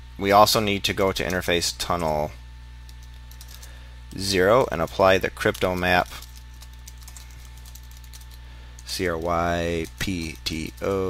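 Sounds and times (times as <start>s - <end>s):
low electrical hum: 0.0s - 11.0s
voice: 0.2s - 2.4s, 4.1s - 6.2s, 8.9s - 11.0s.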